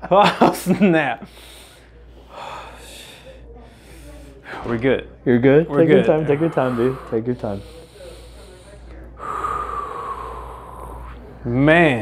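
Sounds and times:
man breathing out through nose: 6.3s - 11.2s.

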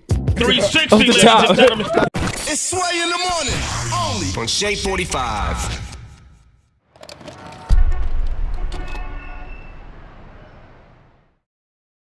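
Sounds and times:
deep boom: 7.7s - 10.8s
thin horn-like tone: 8.6s - 9.9s.

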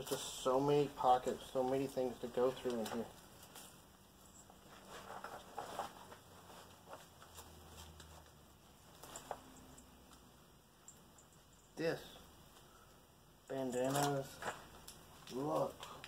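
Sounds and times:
cloth rustling: 2.5s - 9.8s.

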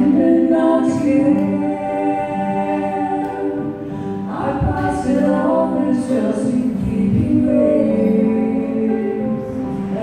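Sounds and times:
women singing together: 0.0s - 10.0s.

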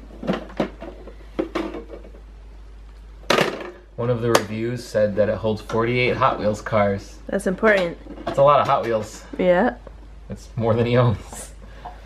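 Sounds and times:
hard plastic clatter: 0.1s - 2.3s.

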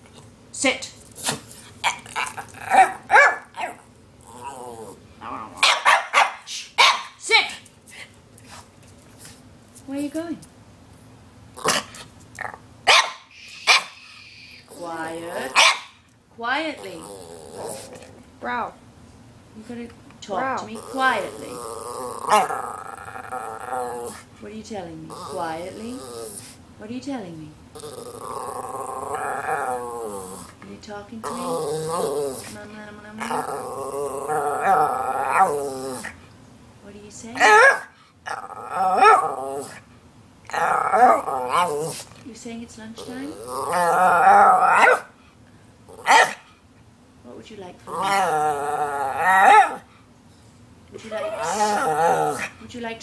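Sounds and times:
dog barking and yelping: 1.8s - 3.8s, 5.2s - 7.2s, 12.8s - 14.6s, 15.4s - 16.0s, 37.4s - 38.0s, 38.7s - 39.8s, 43.8s - 45.1s, 46.0s - 46.4s, 49.1s - 49.9s
dog vocalizing: 20.4s - 24.3s
dog wavering vocal calls: 20.4s - 24.3s, 27.7s - 30.6s, 37.4s - 39.8s, 40.5s - 42.1s, 43.0s - 45.1s, 47.9s - 49.9s, 51.0s - 52.6s.

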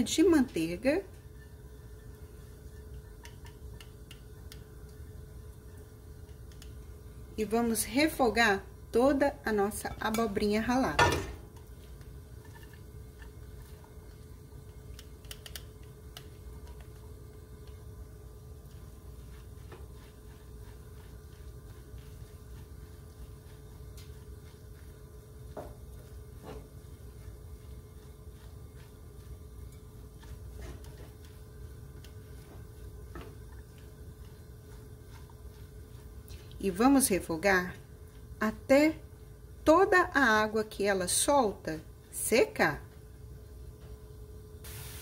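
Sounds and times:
vegetables sizzling in a pan: 44.6s - 45.0s.

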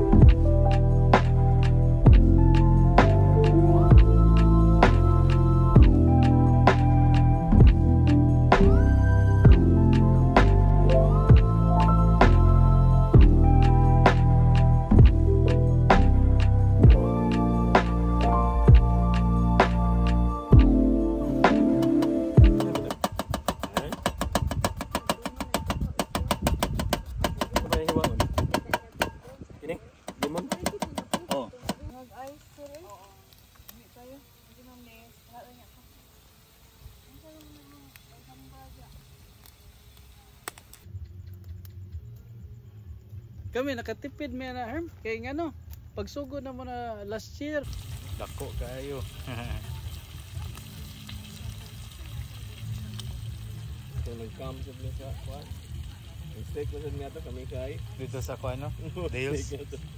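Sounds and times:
steak sizzling in a pan: 30.3s - 40.8s, 47.6s - 59.9s
low rumble of gas stove: 47.0s - 59.9s.

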